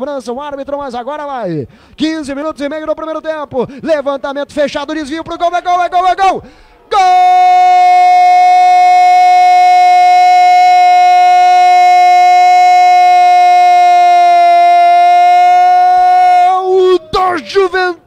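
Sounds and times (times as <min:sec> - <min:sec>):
man shouting long goal cry: 0:05.8 - 0:18.0.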